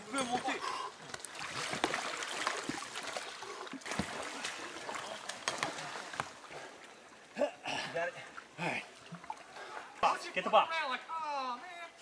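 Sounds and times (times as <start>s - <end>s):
water sloshing and splashing: 0.0s - 10.4s.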